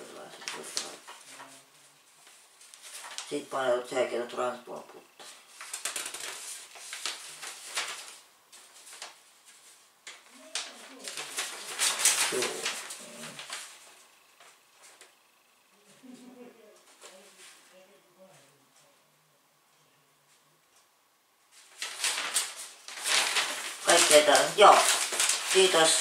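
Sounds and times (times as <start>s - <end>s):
paper leaflet rustling: 0.0s - 3.5s, 5.2s - 15.1s, 21.5s - 26.0s.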